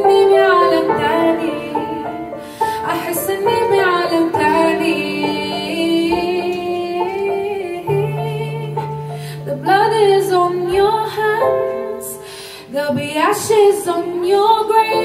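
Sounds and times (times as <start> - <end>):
woman singing wordless notes: 0.0 - 15.0.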